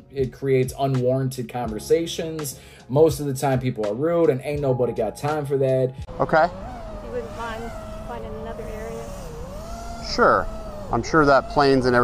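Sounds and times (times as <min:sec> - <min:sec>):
quadcopter motors buzzing: 0:06.1 - 0:12.0.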